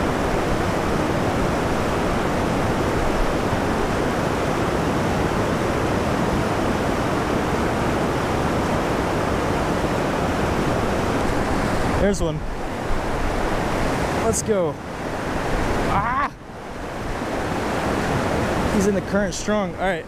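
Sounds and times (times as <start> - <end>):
whitewater rushing over spillway: 0.0 - 20.0.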